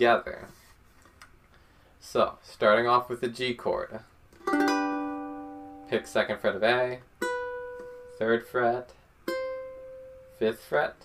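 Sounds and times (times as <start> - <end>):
ukulele chord strummed: 4.4 - 8.6, 9.2 - 10.4.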